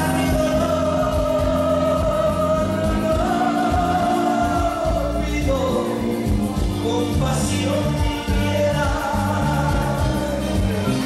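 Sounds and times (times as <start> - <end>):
backing track music: 0.0 - 11.0
man singing karaoke: 0.0 - 11.0.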